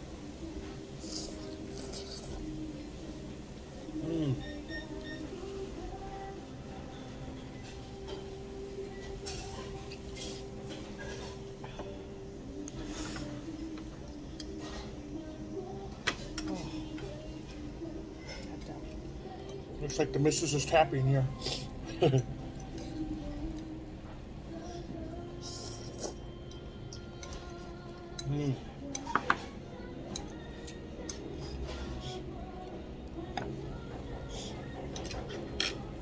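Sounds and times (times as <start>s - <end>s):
restaurant background music: 0.0s - 36.0s.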